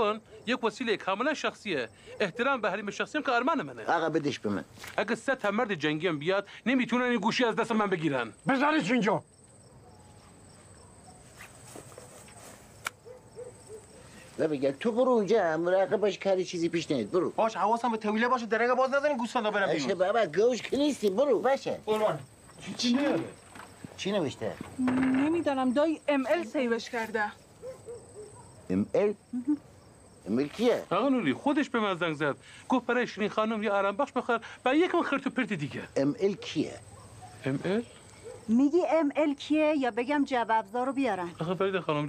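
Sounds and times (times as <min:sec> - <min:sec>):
crickets chirping: 0:00.0 - 0:42.0
murmured voices: 0:22.0 - 0:25.5.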